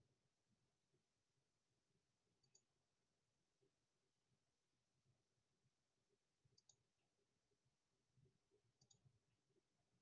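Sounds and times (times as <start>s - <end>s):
very faint clicks: 2.4s - 2.7s, 6.5s - 6.9s, 8.8s - 9.1s.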